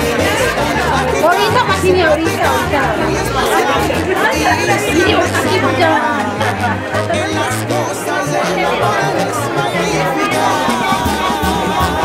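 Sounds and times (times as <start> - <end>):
chatter of many guests: 0.0 - 12.0
music with low bass line: 0.0 - 12.0.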